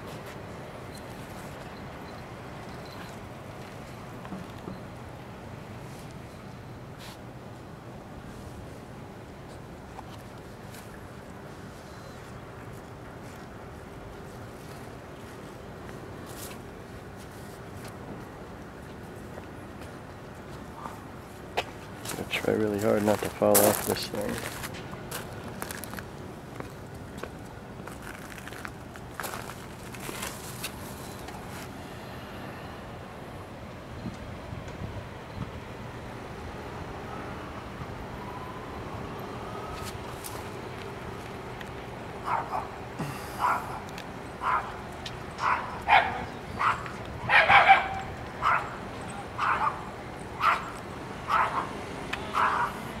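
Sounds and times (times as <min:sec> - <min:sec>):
outdoor background hum: 0:00.0 - 0:53.0.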